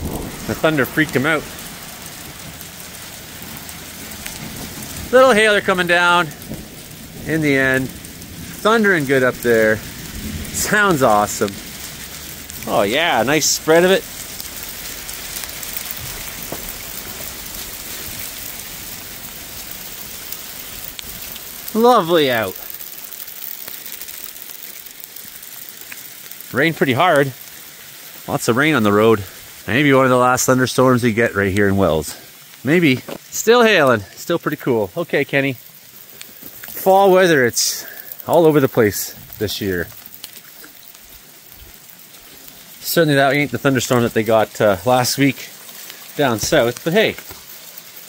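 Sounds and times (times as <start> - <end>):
rain and hail falling: 0.0 - 48.0.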